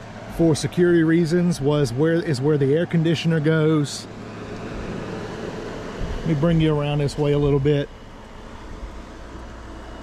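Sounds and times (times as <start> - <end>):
air conditioner humming: 0.0 - 10.0.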